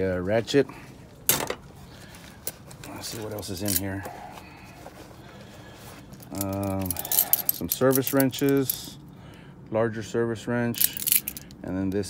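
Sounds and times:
low steady background noise: 0.0s - 12.0s
handling of metal wrenches: 2.4s - 4.2s, 6.1s - 9.0s, 10.7s - 11.6s.

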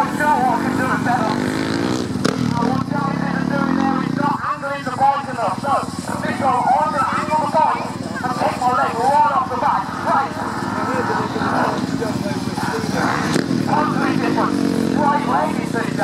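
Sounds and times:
man talking: 0.0s - 1.5s, 2.4s - 16.0s
motorbike engine revving: 0.0s - 16.0s.

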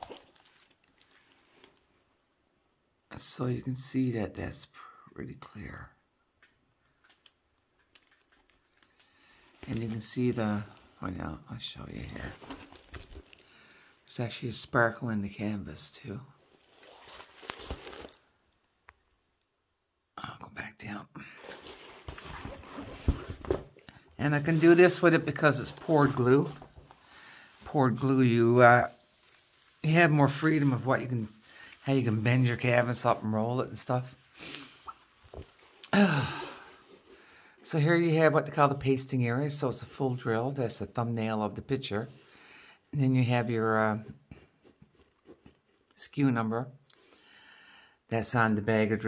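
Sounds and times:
plastic cover rustling and crinkling: 0.0s - 1.9s, 7.0s - 13.6s, 16.4s - 18.3s, 21.3s - 34.2s, 35.0s - 35.8s.

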